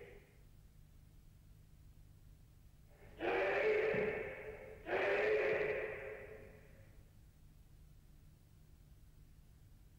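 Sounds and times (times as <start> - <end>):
person shouting loudly: 4.8 - 6.0.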